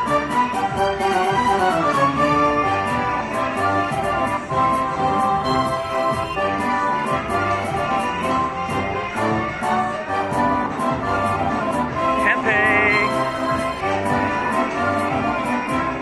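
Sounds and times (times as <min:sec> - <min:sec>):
slot machine win music: 0:01.1 - 0:15.7.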